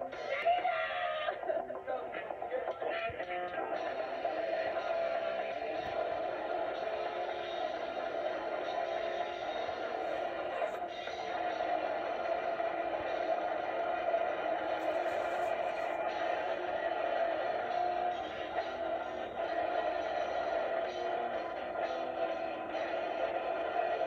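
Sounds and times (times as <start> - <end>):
muffled rock band recording: 0.0 - 24.0.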